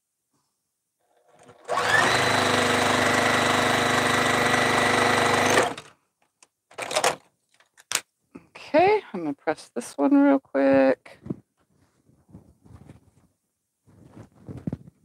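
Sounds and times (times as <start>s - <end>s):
sewing machine running: 1.1s - 5.9s.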